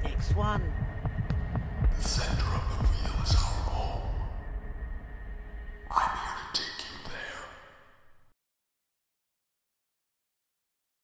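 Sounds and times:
low rumbling drone: 0.0s - 8.3s.

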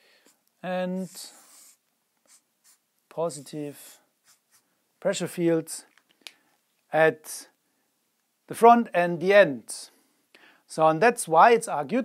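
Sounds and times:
marker pen on whiteboard: 0.2s - 4.7s.

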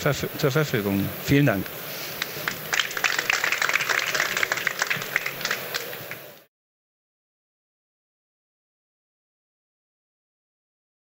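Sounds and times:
audience applauding: 2.2s - 6.5s.

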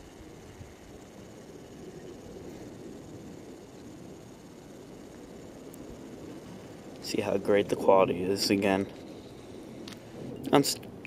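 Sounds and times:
outdoor ambience hiss: 0.0s - 11.0s.

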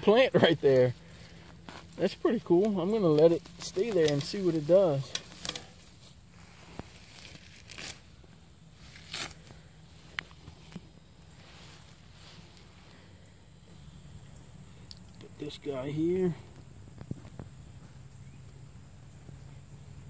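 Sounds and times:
plants rustling: 0.0s - 17.8s
plants tearing: 1.0s - 8.2s, 8.8s - 10.8s.

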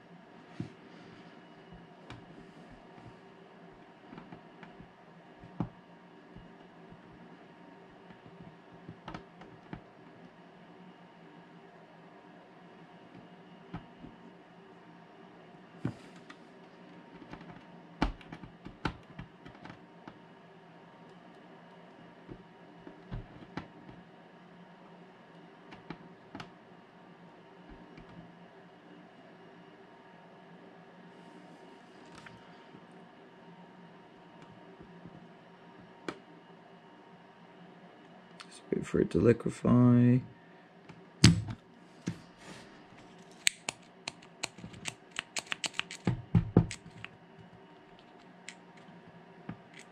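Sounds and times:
room hum: 0.0s - 49.9s.

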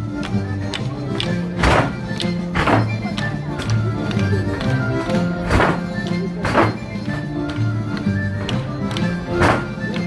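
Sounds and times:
folk dance music: 0.0s - 10.0s.

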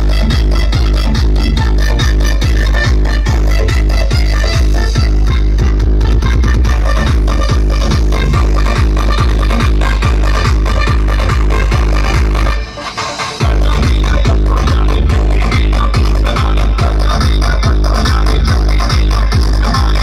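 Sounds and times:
electronic dance music: 0.0s - 20.0s.

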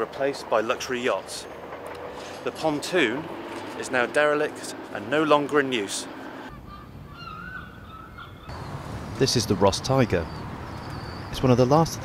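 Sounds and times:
long wavering bird call: 6.4s - 8.7s.

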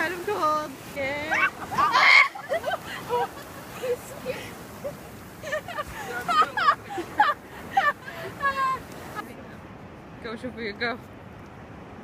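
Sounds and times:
surf washing over feet: 0.0s - 12.0s
people squealing and laughing: 1.2s - 4.0s.

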